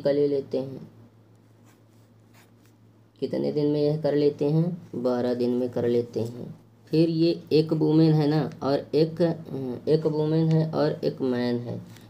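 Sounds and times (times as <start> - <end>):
low steady hum: 0.0 - 12.0
pen scratching on paper: 1.6 - 2.7.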